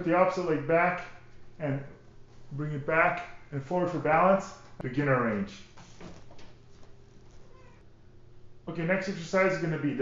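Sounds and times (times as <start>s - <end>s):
low room hum: 0.0s - 10.0s
cat meowing: 7.4s - 7.8s.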